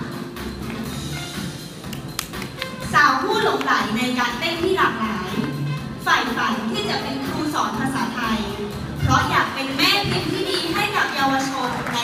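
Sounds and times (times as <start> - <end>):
music over sound system: 0.0 - 12.0.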